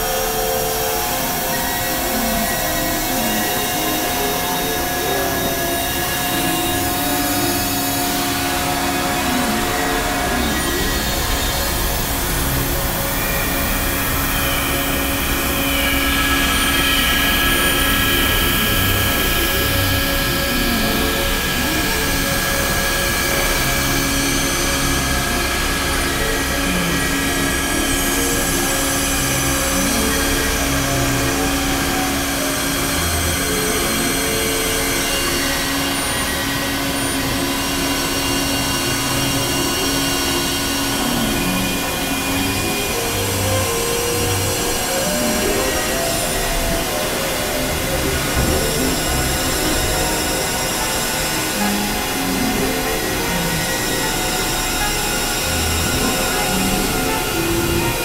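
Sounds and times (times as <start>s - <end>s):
held drone tone: 0.0s - 58.0s
synthesizer noise wash: 0.0s - 58.0s.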